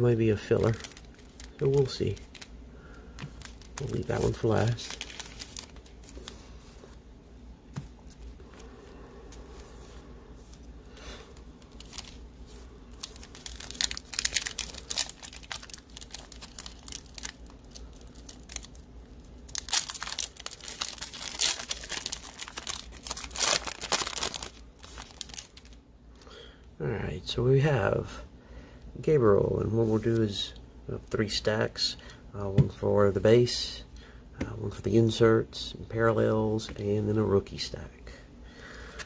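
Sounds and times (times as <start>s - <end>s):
handling of card packs: 0.3s - 7.0s, 7.7s - 26.4s
foil wrapper crinkling and tearing: 0.5s - 2.5s, 3.2s - 6.4s, 11.2s - 12.2s, 12.9s - 26.3s.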